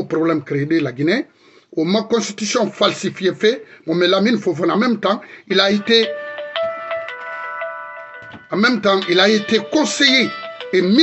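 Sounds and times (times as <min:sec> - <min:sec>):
electronic phone ringtone: 0:05.8 - 0:11.0.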